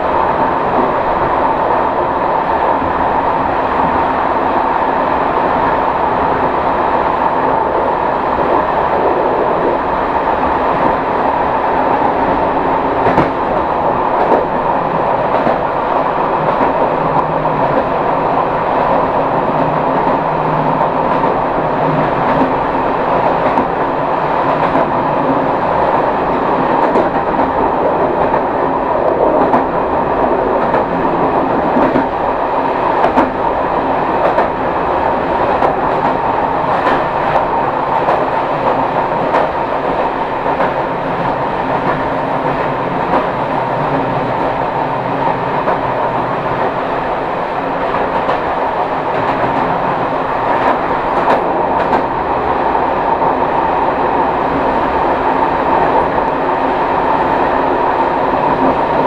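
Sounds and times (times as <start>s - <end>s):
diesel train running on track: 0.0s - 59.0s.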